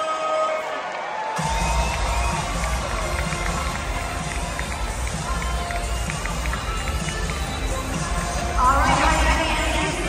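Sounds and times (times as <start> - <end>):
murmur of large crowd: 0.0 - 10.0
music over loudspeakers with bass beat: 1.4 - 10.0.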